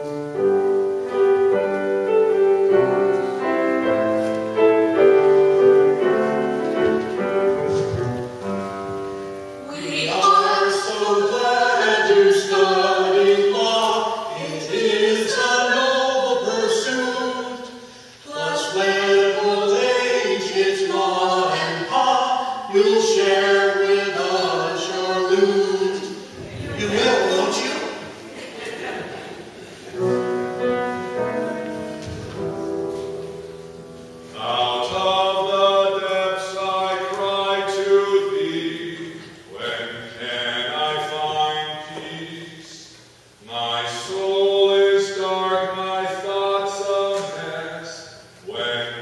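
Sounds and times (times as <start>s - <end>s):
piano chord: 0.0s - 13.5s, 29.9s - 36.0s
man singing slow melody: 34.4s - 49.0s.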